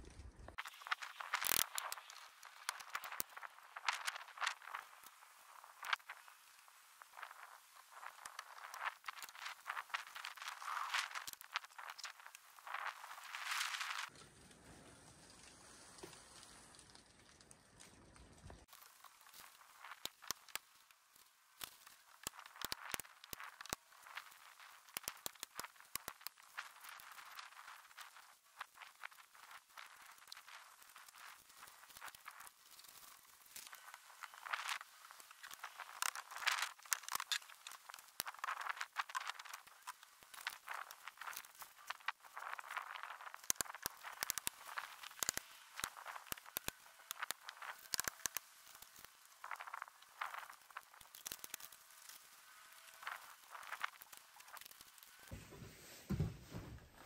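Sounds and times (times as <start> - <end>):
plastic sheeting rustling: 21.4 - 57.0.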